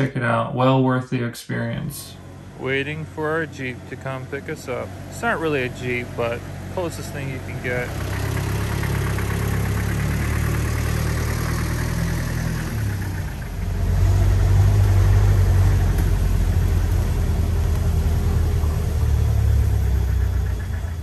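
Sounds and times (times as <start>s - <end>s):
vehicle engine idling and driving: 1.9s - 21.0s.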